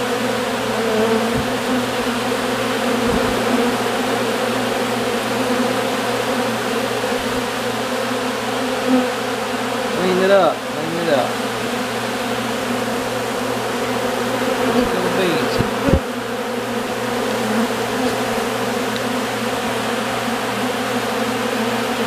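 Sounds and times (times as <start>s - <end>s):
bee droning past microphone: 0.0s - 22.0s
bees buzzing: 0.0s - 22.0s
short thumps: 1.3s - 1.8s, 14.8s - 16.1s.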